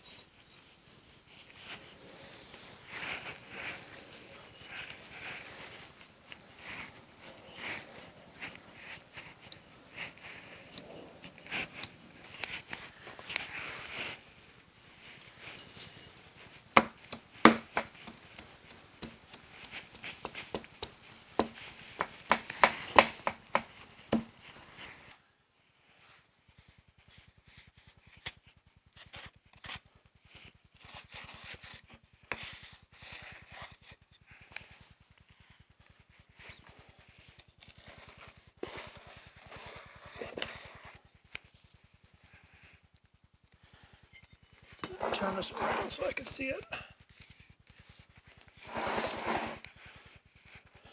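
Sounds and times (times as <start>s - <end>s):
sand crunching and rustling: 48.6s - 49.6s.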